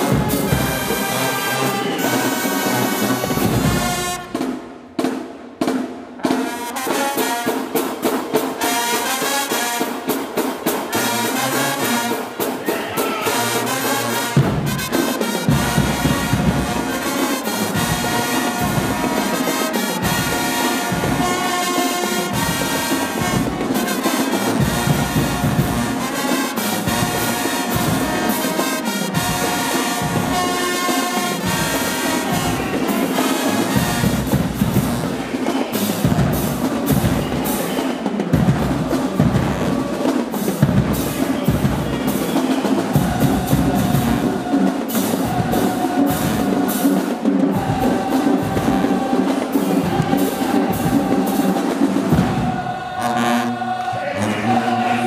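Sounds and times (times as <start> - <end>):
marching band brass: 0.0 - 55.0.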